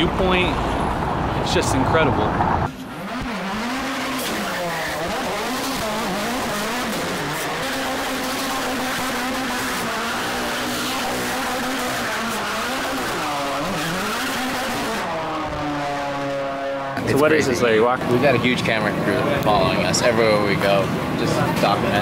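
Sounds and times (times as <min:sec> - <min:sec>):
car engine revving: 0:00.0 - 0:22.0
tyres skidding and squealing: 0:00.0 - 0:22.0.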